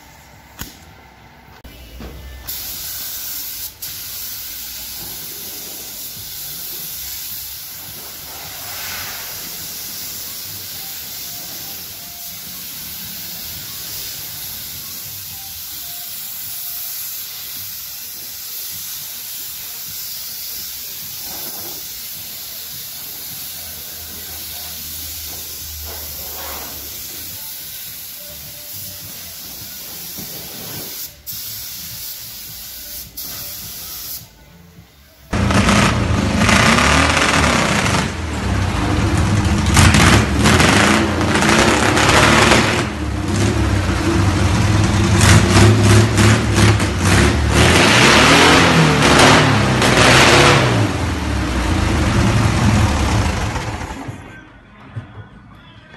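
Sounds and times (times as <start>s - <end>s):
spray gun hissing: 2.5s - 34.3s
car engine revving rough: 35.4s - 54.0s.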